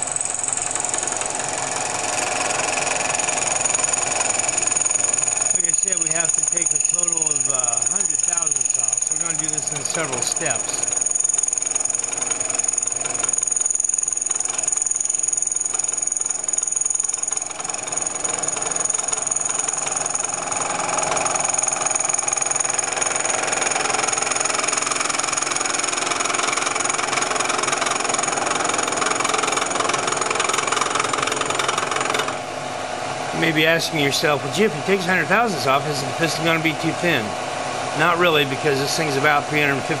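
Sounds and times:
milling machine whining: 0:00.0 - 0:40.0.

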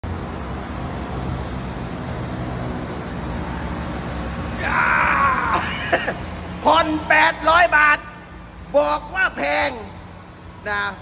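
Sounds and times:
man shouting: 0:04.6 - 0:10.0.

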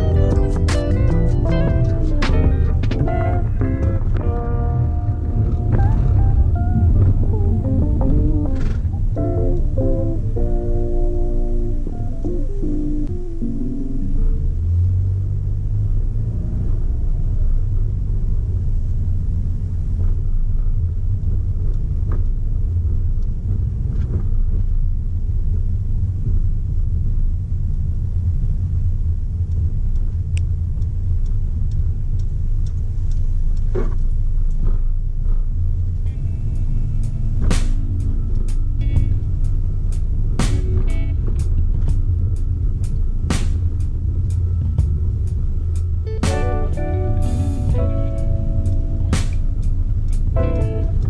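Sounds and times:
background music with plucked notes: 0:00.0 - 0:14.5, 0:36.1 - 0:42.0, 0:46.1 - 0:51.0
car engine and road rumble: 0:00.0 - 0:51.0.

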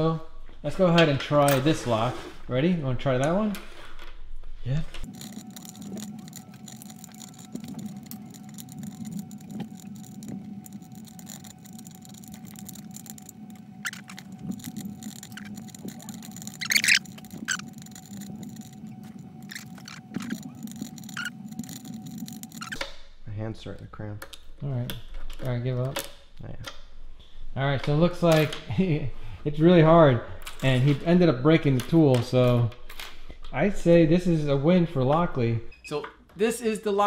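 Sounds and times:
lock pick clicking and scraping: 0:05.1 - 0:22.8.

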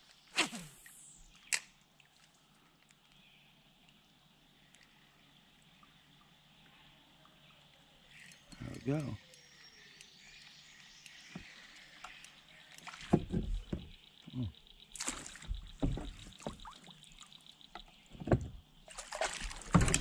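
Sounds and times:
faint high hiss: 0:00.0 - 0:01.6
knocks and splashes against hull: 0:12.9 - 0:14.0, 0:15.0 - 0:17.0, 0:17.8 - 0:20.0.

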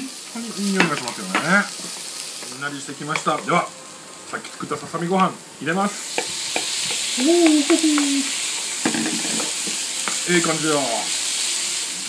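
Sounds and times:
food sizzling in a frying pan: 0:00.0 - 0:12.0
wooden spatula knocking on pan: 0:06.1 - 0:07.6.

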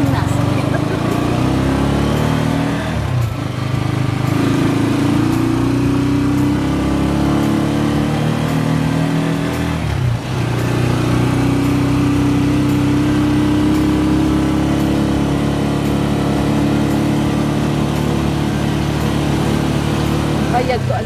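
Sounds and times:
car engine running inside cabin: 0:00.0 - 0:21.0
road noise: 0:00.0 - 0:21.0.

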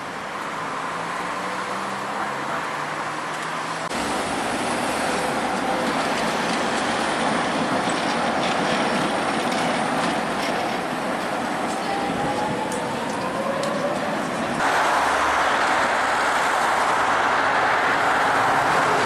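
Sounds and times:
street traffic: 0:00.0 - 0:19.0
trams rolling through: 0:00.0 - 0:19.0
car passing close: 0:13.0 - 0:19.0.

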